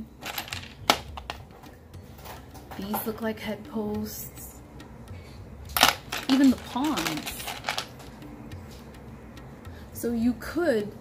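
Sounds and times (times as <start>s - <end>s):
wooden chess pieces clicking: 5.8s - 8.2s.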